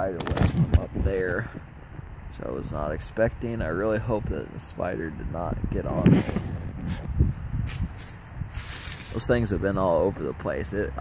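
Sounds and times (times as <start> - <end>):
short hissy bursts: 7.7 - 9.2
rustling: 7.7 - 9.3.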